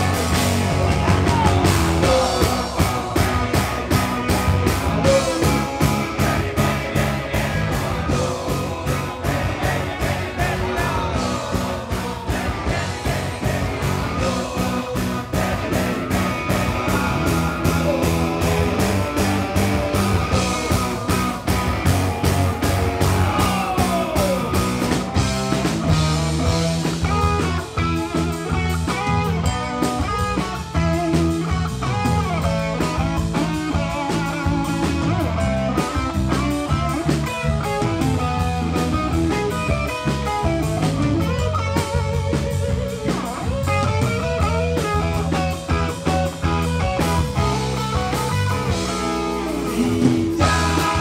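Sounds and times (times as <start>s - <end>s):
drum kit: 0.0s - 51.0s
electric guitars: 0.0s - 51.0s.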